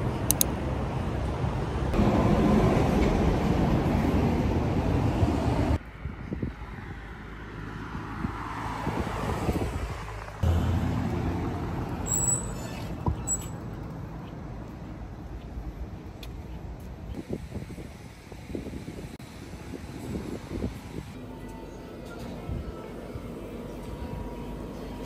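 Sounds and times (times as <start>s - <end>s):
road traffic rushing: 0.0s - 25.0s.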